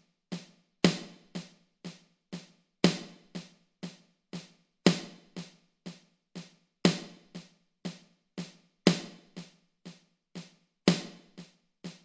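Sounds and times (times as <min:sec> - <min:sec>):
electronic snare drum strokes: 0:00.0 - 0:12.0.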